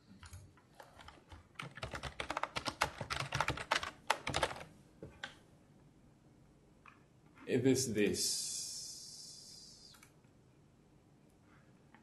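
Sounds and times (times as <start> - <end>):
typing on laptop keyboard: 0.2 - 5.4.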